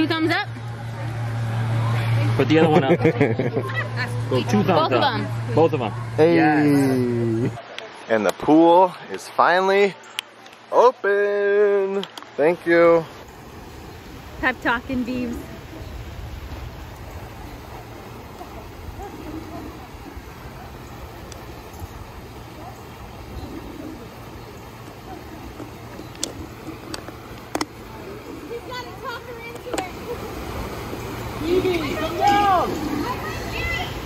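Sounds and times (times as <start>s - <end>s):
voices in background: 17.2s - 34.0s
water splashing down a slide: 25.0s - 34.0s.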